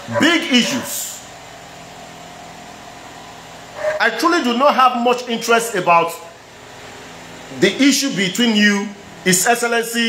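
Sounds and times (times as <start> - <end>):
person speaking: 0.0 - 1.3, 4.0 - 6.4, 7.5 - 10.0
faint hum: 0.0 - 10.0.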